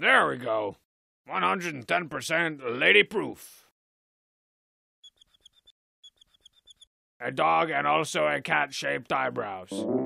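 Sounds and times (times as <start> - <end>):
marker squeaking on glossy photo: 5.0 - 6.9.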